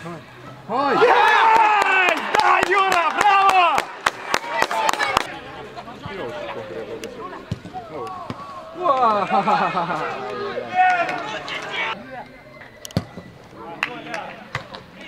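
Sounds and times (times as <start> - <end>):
men shouting: 0.7 - 5.2.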